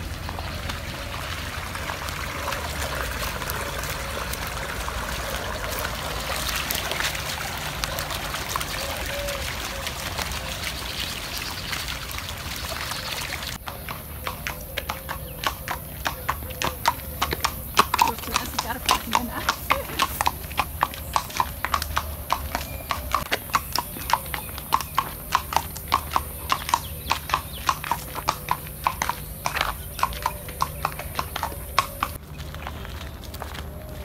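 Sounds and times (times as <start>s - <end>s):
horse hooves clip-clopping on pavement: 0.0s - 34.0s.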